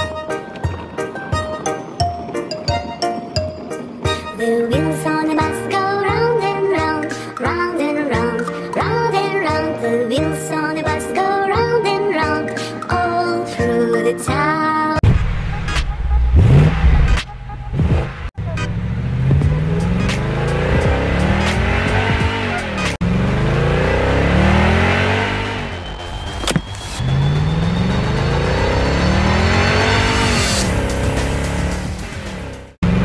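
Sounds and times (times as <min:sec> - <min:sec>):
race car engine revving: 0:16.1 - 0:33.0.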